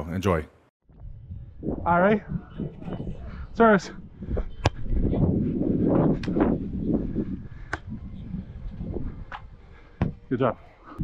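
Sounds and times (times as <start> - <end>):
wind rumble on microphone: 0.9 - 10.3.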